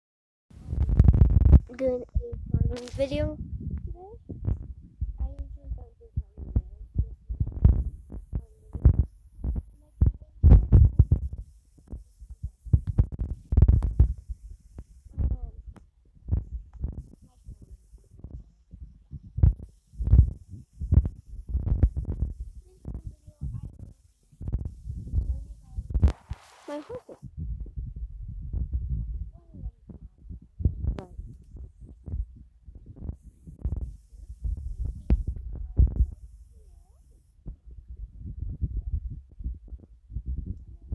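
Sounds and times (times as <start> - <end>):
wind buffeting a microphone: 0.6 - 26.4, 27.2 - 40.9.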